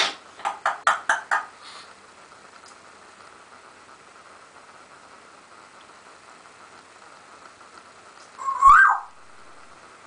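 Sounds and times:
parrot whistle: 0:08.4 - 0:09.2.

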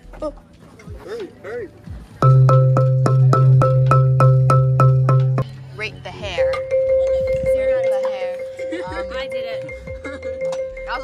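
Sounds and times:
marimba struck on one note: 0:02.2 - 0:05.5
steady low tone: 0:02.2 - 0:11.0.

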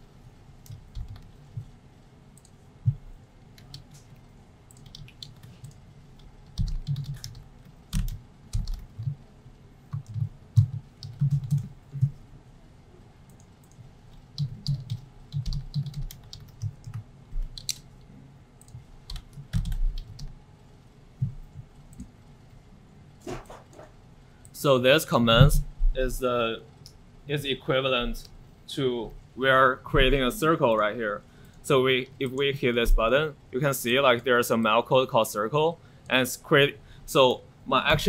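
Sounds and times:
typing on computer keyboard: 0:00.6 - 0:01.3, 0:03.6 - 0:09.2, 0:09.9 - 0:12.2, 0:13.3 - 0:17.8, 0:18.6 - 0:20.3.

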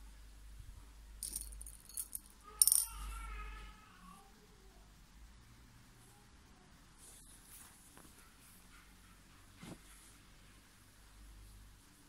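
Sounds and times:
beads rattling and clicking: 0:01.2 - 0:02.9.

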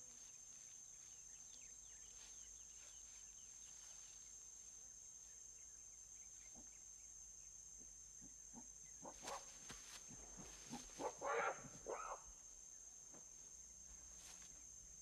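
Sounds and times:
short animal calls: 0:10.7 - 0:12.3.

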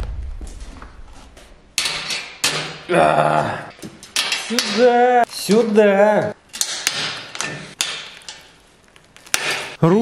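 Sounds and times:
low thud: 0:00.0 - 0:01.6.

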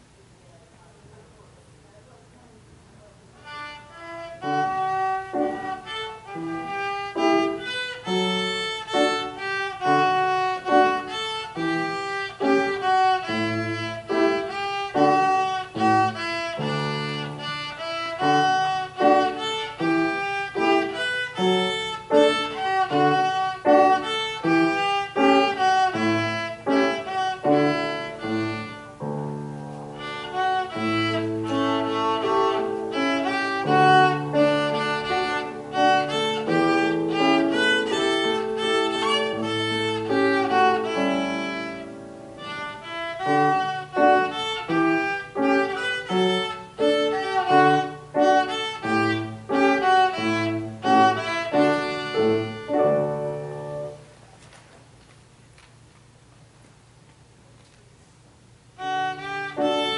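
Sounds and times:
violin playing classical piece: 0:03.4 - 0:54.0, 0:58.7 - 0:59.9
piano accompaniment: 0:03.4 - 0:54.3, 0:58.8 - 0:59.9.

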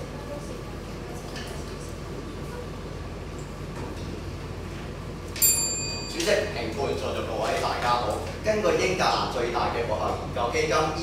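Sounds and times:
small bell struck: 0:05.4 - 0:06.3.

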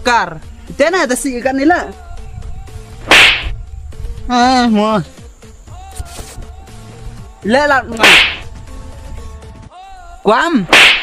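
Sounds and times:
hand slapping a face: 0:03.1 - 0:03.5, 0:08.0 - 0:08.5, 0:10.7 - 0:11.0.

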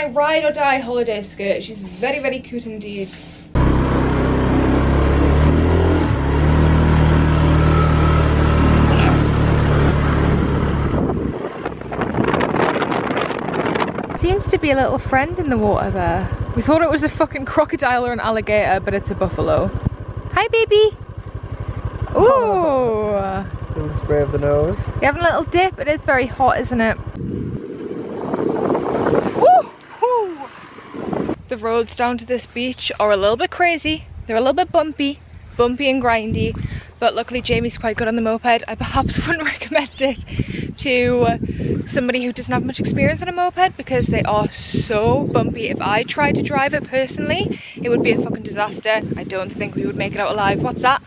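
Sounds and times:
moped engine running: 0:03.6 - 0:41.7, 0:42.4 - 0:51.0
wind on microphone: 0:10.2 - 0:20.9, 0:23.0 - 0:51.0
voice saying ooh: 0:22.2 - 0:22.8, 0:29.4 - 0:30.5.

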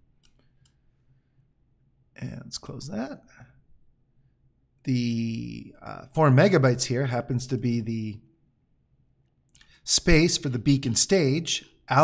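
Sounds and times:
faint computer mouse clicks: 0:00.2 - 0:00.8.

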